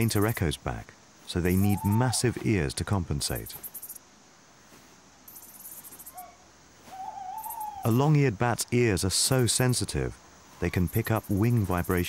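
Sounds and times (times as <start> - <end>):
high hiss: 0.0 - 12.0
owl hooting: 1.4 - 2.4, 5.3 - 8.1.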